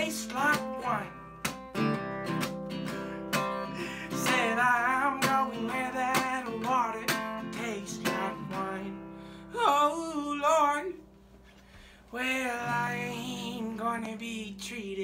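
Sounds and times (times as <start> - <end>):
man singing wordless notes: 0.0 - 1.2, 3.7 - 11.0, 12.1 - 15.0
acoustic guitar strummed: 0.0 - 11.1, 12.4 - 14.9.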